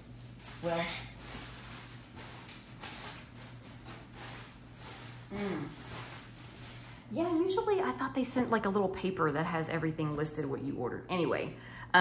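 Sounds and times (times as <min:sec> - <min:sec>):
handling and rustling noises: 0:00.0 - 0:07.1.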